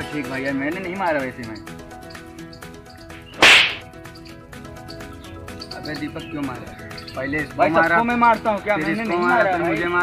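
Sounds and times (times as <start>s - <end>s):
background music: 0.0s - 10.0s
sharp slap: 3.2s - 3.9s.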